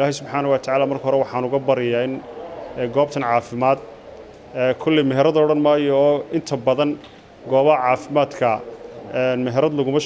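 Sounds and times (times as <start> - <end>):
man speaking: 0.0 - 3.9, 4.5 - 10.0.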